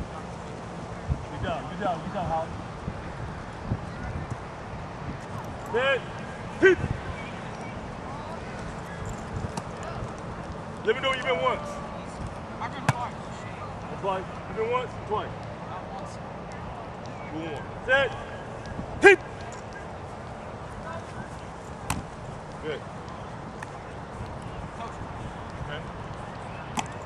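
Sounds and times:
open-air field noise: 0.0 - 27.0
outdoor background noise: 0.0 - 27.0
short shout: 19.0 - 19.3
football slapping into hands: 21.8 - 22.1, 26.7 - 27.0.

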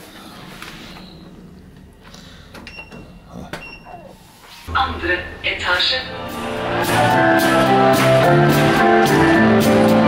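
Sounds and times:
low steady hum: 0.4 - 6.8.

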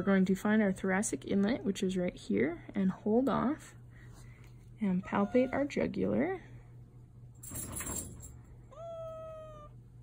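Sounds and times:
cat meowing: 8.7 - 9.8.

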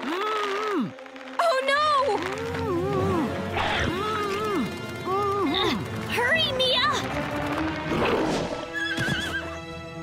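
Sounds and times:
background music: 0.0 - 10.0
horse whinny: 8.6 - 9.6.

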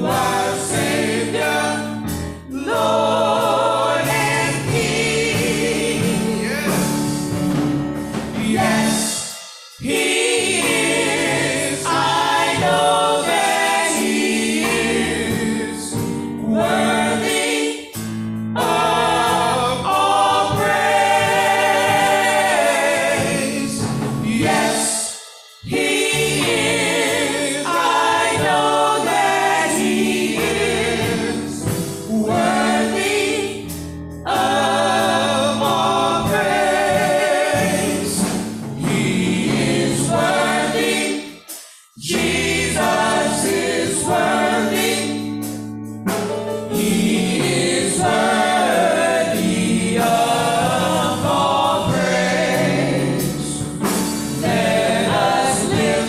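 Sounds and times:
gospel group singing with vibrato: 0.0 - 56.0.

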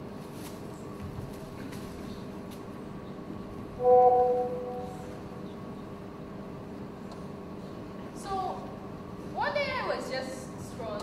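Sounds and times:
faint steady hum: 0.0 - 11.0
held musical note: 3.8 - 5.3.

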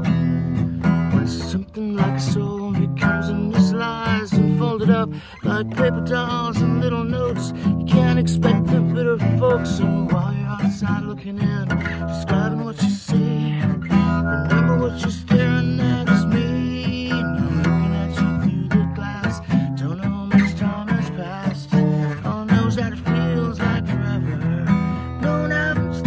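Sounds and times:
acoustic guitar strumming: 0.0 - 26.0
man singing: 0.0 - 26.0.

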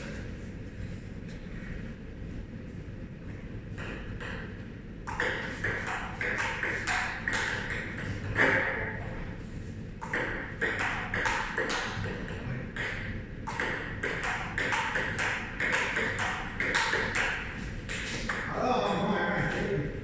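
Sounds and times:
ping pong ball hitting paddles: 3.8 - 9.2, 10.0 - 20.0
ball bouncing on table: 5.1 - 9.0, 10.0 - 18.5
man's voice: 18.5 - 19.9.

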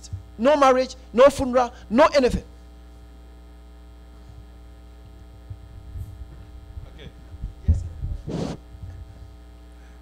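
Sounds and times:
electrical mains hum: 0.0 - 10.0
microphone handling thump: 4.3 - 9.2.

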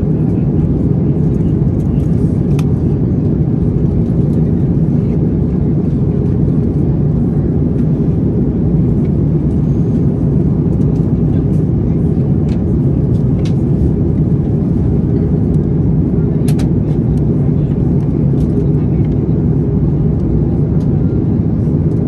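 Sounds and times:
airliner cabin engine drone: 0.0 - 22.0.

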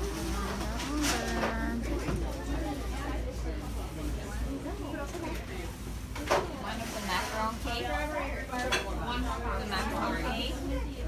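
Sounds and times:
people talking: 0.0 - 11.0
dishes and cutlery clinking: 8.5 - 9.2.

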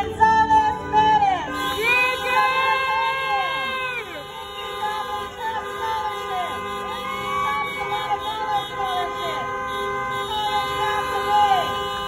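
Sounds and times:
voices calling out: 0.0 - 12.0
vehicle horns honking: 0.6 - 12.0.

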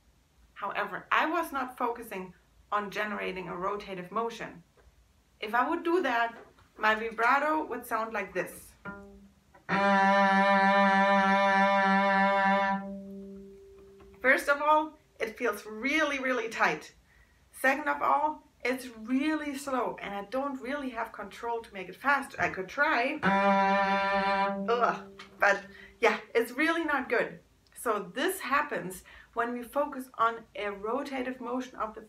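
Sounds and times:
cello bowed note with vibrato: 8.8 - 14.3, 23.2 - 26.0.

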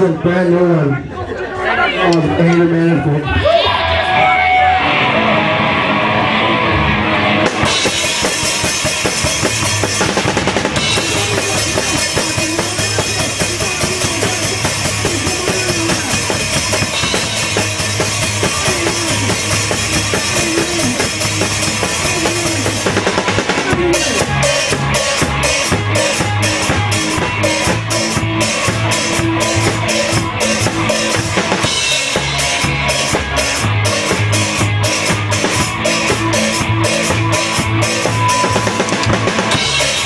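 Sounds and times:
punk band playing live: 3.4 - 40.0
drum hits: 7.4 - 40.0.

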